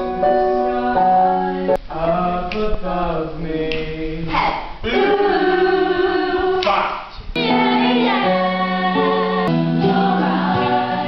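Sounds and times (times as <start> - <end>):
voices singing in chorus: 0.7 - 11.0.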